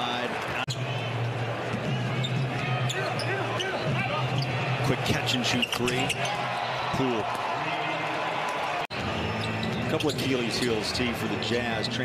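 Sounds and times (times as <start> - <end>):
murmur of arena crowd: 0.0 - 12.0
sneaker squeaks: 2.2 - 4.6, 5.5 - 6.4, 9.3 - 10.5.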